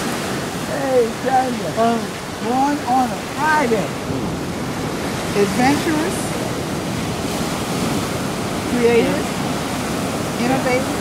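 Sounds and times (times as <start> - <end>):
ocean surf breaking on rocks: 0.0 - 11.0.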